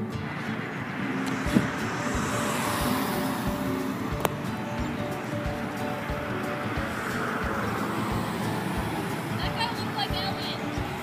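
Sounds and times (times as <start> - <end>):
background music with steady beat: 0.0 - 11.0
car passing on road: 0.0 - 11.0.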